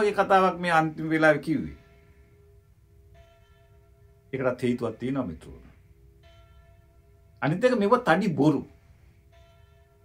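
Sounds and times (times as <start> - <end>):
bell-like music tones: 0.0 - 10.0.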